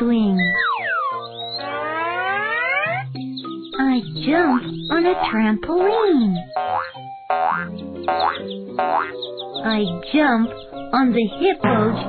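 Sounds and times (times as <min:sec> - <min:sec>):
light background music: 0:00.0 - 0:12.0
cartoon boing: 0:00.5 - 0:03.0, 0:06.6 - 0:09.2.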